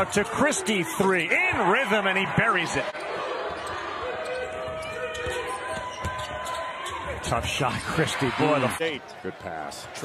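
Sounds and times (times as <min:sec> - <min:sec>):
arena crowd hum: 0:00.0 - 0:10.0.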